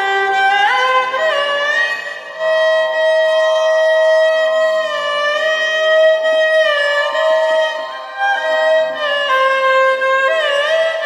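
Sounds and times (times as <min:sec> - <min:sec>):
violin long bowed note: 0:00.0 - 0:11.0.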